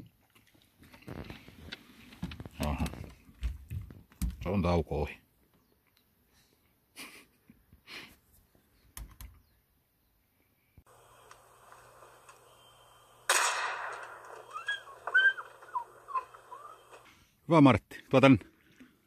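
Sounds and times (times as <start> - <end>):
bird calls: 10.9 - 17.2
shotgun shot: 13.2 - 14.5.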